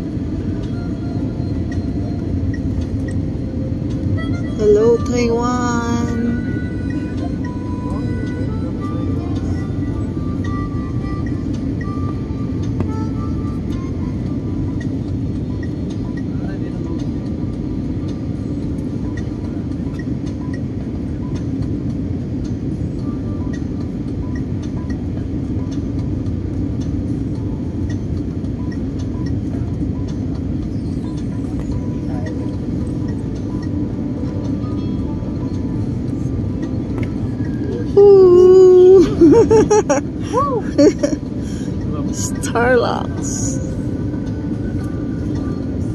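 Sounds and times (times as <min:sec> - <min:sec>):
faint music or voices: 0:00.0 - 0:39.3, 0:40.0 - 0:45.9
airliner cabin roar: 0:00.0 - 0:45.9.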